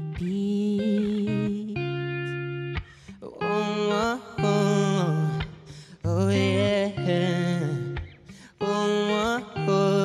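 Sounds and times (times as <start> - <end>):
electric guitar chords: 0.0 - 10.0.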